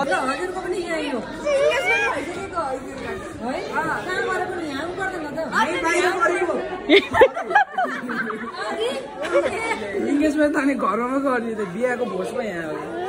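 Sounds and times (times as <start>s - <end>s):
people talking over one another: 0.0s - 13.0s.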